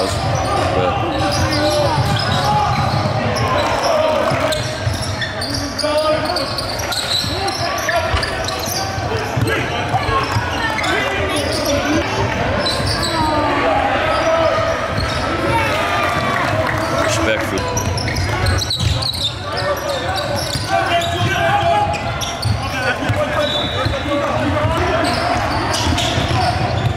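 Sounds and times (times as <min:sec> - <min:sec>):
basketball bouncing on court: 0:00.0 - 0:05.6, 0:07.1 - 0:13.2, 0:14.9 - 0:26.9
players and spectators voices: 0:00.0 - 0:26.9.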